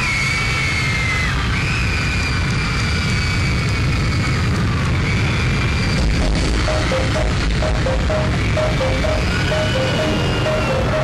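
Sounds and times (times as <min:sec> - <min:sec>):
heavy bass: 0:06.1 - 0:11.0
loud concert music: 0:06.6 - 0:11.0.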